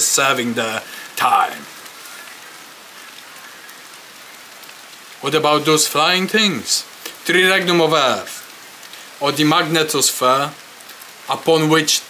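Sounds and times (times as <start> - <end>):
steady outdoor hiss: 0.0 - 12.0.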